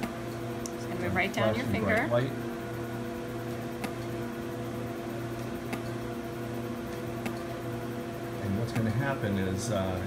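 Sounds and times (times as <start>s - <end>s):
machine hum: 0.0s - 10.0s.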